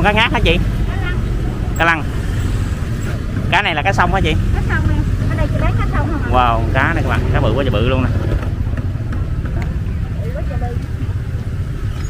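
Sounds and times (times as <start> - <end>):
motorbike and street traffic rumble: 0.0 - 12.0.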